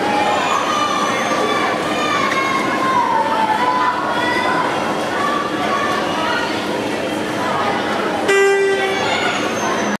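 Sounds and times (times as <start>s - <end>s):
crowd voices: 0.0s - 10.0s
horn blast: 8.3s - 9.1s.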